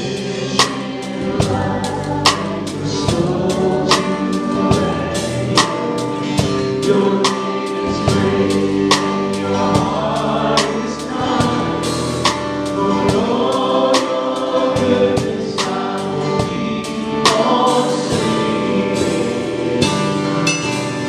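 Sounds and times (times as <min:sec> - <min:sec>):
acoustic guitar: 0:00.0 - 0:21.0
bass guitar: 0:00.0 - 0:21.0
drum kit with cymbals: 0:00.0 - 0:21.0
keyboard: 0:00.0 - 0:21.0
people singing: 0:00.0 - 0:21.0.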